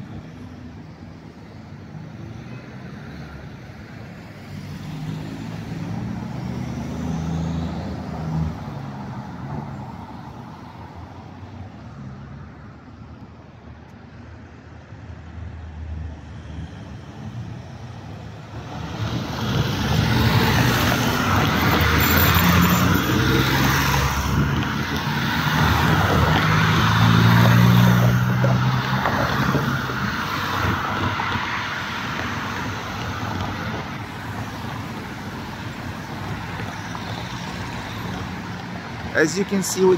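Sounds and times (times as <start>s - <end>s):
vehicles driving past: 0.0s - 39.9s.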